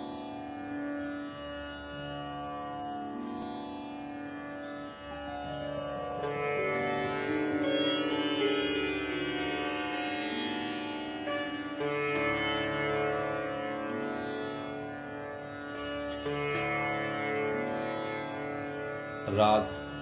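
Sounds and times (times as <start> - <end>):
sitar gliding notes: 0.0 - 20.0.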